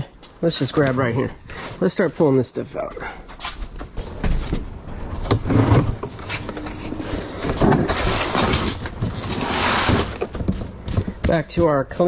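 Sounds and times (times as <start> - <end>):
cardboard and paper rustling: 3.6 - 11.7.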